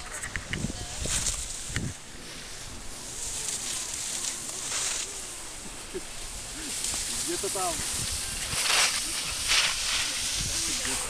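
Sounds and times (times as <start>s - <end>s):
skis scraping on snow: 0.0s - 11.0s.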